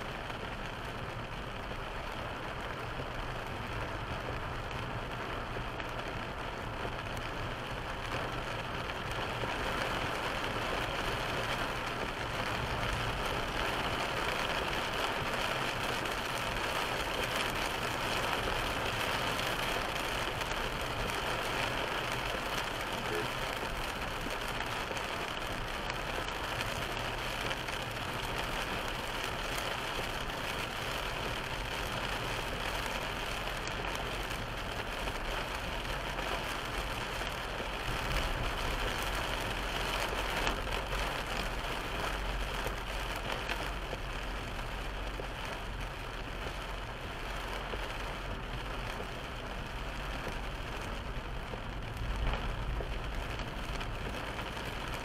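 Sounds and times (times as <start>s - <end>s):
rain hissing on car glass: 0.0s - 55.0s
tyres on wet road: 0.0s - 55.0s.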